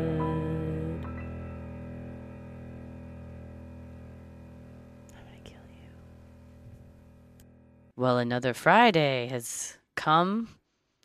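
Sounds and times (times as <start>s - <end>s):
person whispering: 5.1s - 6.0s.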